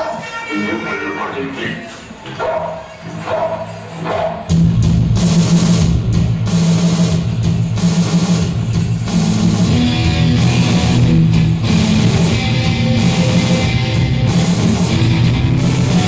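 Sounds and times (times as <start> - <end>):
drum beat: 4.4 - 16.0
electric guitar: 9.1 - 16.0.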